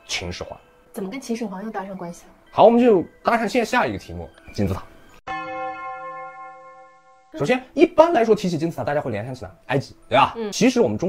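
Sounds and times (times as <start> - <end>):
bell-like chime ringing: 2.1 - 8.4.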